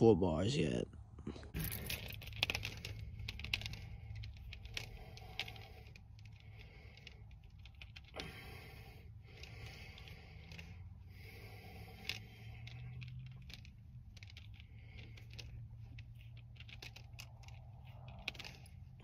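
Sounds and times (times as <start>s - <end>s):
steady low hum: 0.9s - 19.0s
metal hooks clicking and rattling: 1.5s - 8.3s, 9.3s - 19.0s
soft handling noises: 9.1s - 19.0s.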